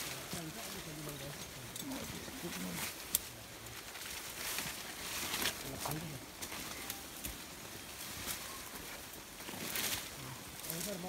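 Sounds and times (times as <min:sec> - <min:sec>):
rustling of brush and rope: 0:00.0 - 0:11.0
voices murmuring: 0:00.0 - 0:11.0.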